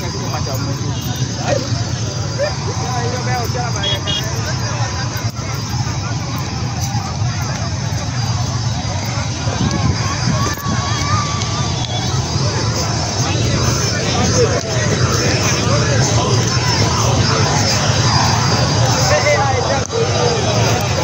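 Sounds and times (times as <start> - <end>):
indistinct voices talking: 0.0 - 21.0
motorcycle engine running: 0.0 - 21.0.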